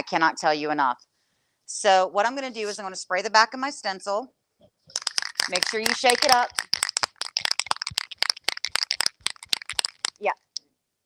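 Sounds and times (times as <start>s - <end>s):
aerosol can mixing ball rattling: 4.9s - 10.6s.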